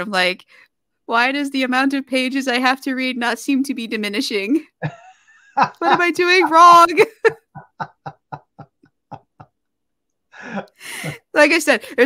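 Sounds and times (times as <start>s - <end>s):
person laughing: 4.8s - 9.6s.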